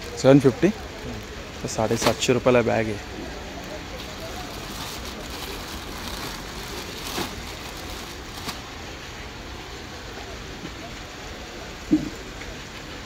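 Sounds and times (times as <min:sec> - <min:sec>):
plastic wrapping crinkling: 0:00.0 - 0:02.9, 0:03.6 - 0:08.8
faint voices: 0:00.0 - 0:13.0.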